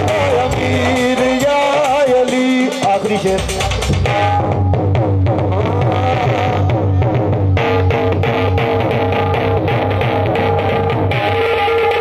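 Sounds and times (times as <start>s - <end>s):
live band playing melodic notes: 0.0s - 12.0s
steady drum beat: 0.0s - 12.0s
strong bass: 0.0s - 12.0s.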